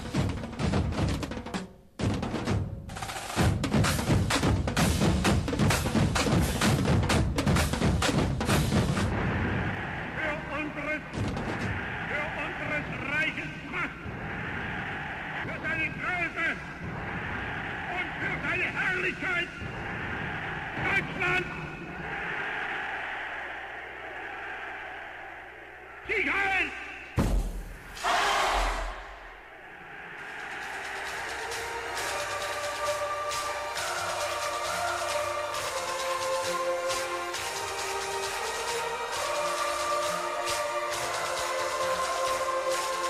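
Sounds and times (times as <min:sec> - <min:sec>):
man shouting speech: 0:10.2 - 0:11.2, 0:12.0 - 0:14.0, 0:15.4 - 0:16.8, 0:17.8 - 0:19.6, 0:20.7 - 0:21.8, 0:26.0 - 0:27.2.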